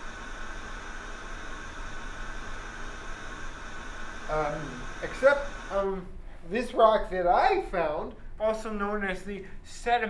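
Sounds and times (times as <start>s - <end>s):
television static hiss: 0.0s - 10.0s.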